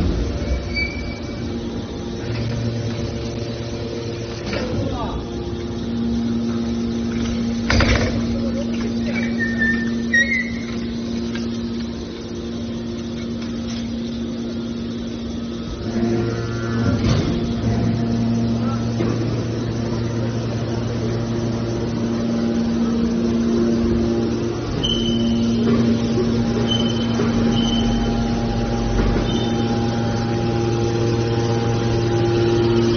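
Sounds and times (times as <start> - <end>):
hydraulic baler mechanical hum: 0.0 - 32.9
lower hum: 0.0 - 32.9.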